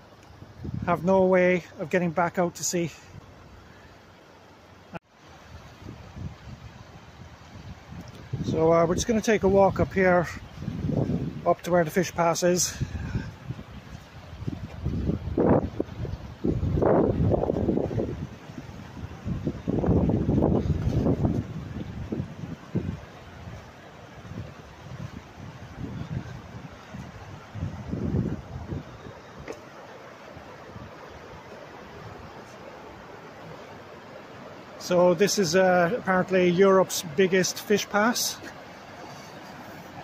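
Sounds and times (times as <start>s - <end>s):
wind buffeting microphone: 0.0s - 1.1s, 5.4s - 33.0s
flowing water rushing: 0.0s - 40.0s.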